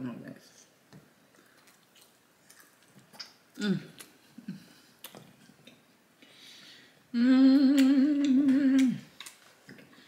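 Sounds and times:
woman humming mmm: 3.6s - 4.7s, 7.1s - 9.2s.

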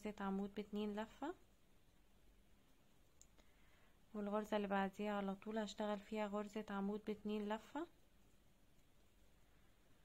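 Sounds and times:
faint small clicks: 3.1s - 3.6s.

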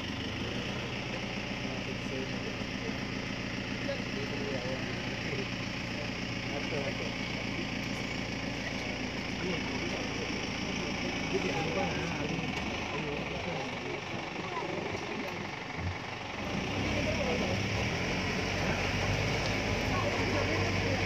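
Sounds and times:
indistinct chatter: 0.0s - 21.0s
vehicle engine idling: 0.0s - 21.0s.

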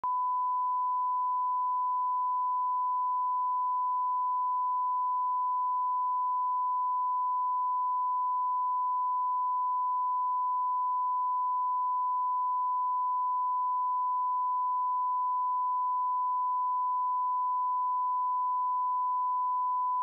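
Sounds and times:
sine-wave test tone: 0.0s - 20.0s.

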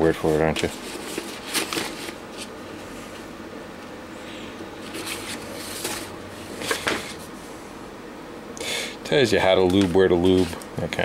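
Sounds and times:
paper sheets rustling: 0.2s - 2.5s, 4.8s - 7.2s.

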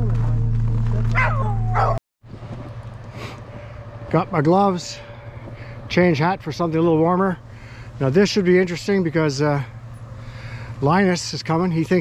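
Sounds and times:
loud steady low hum: 0.0s - 12.0s
dogs yipping and whining: 1.0s - 2.0s.

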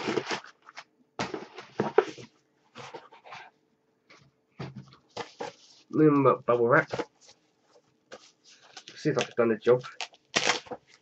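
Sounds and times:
packing paper rustling: 0.0s - 3.4s, 8.1s - 11.0s.

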